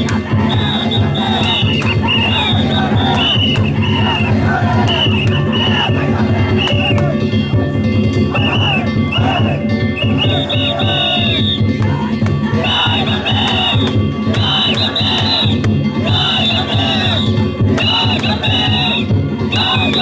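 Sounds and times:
men shouting: 0:00.0 - 0:07.4, 0:08.1 - 0:20.0
taiko drum beating: 0:00.0 - 0:20.0.

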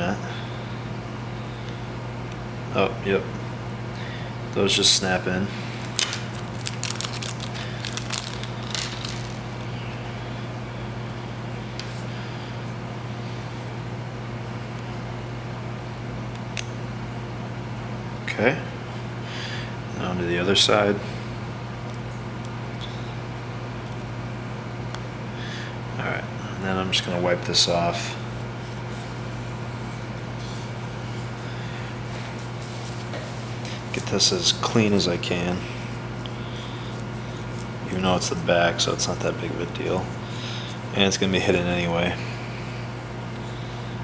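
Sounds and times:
background hum: 0:00.0 - 0:44.0.

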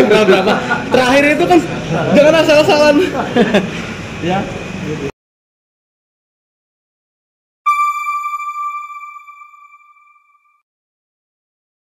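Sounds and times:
bell-like chime tone: 0:07.7 - 0:10.6.

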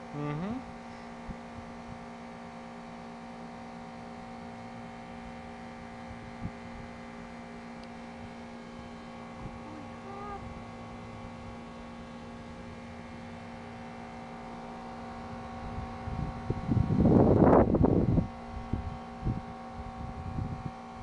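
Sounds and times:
steady low hum: 0:00.0 - 0:21.0
wind buffeting microphone: 0:15.4 - 0:20.8.

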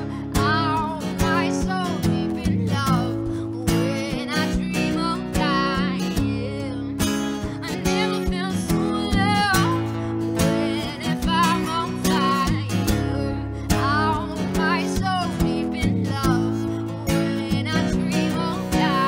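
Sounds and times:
acoustic guitars strumming: 0:00.0 - 0:19.0
woman singing: 0:00.0 - 0:19.0.

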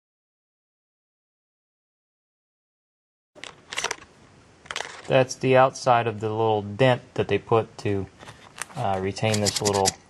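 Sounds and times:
faint room hiss: 0:03.4 - 0:10.0
scratchy clicking handling noises: 0:08.2 - 0:10.0.

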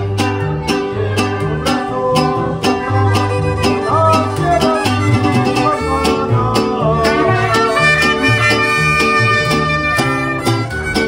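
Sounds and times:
deep plucked bass notes: 0:00.0 - 0:11.0
mariachi band playing: 0:00.0 - 0:11.0
strummed guitars: 0:00.0 - 0:11.0
violin melody: 0:02.6 - 0:11.0.

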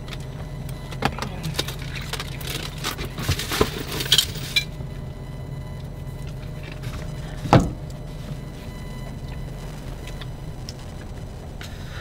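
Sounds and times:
low hum in car cabin: 0:00.0 - 0:12.0.

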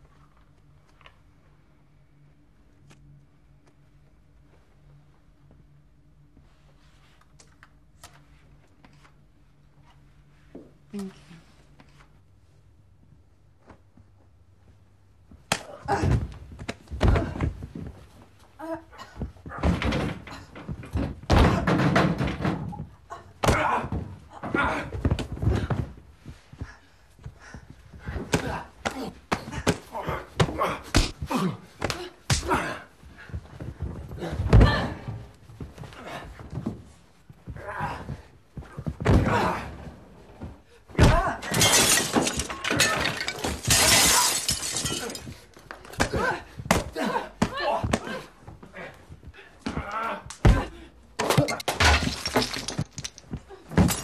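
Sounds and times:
bodies thudding against wall: 0:15.8 - 0:18.2, 0:19.1 - 0:27.3
glass shattering and clattering: 0:41.4 - 0:45.4, 0:51.5 - 0:54.0.

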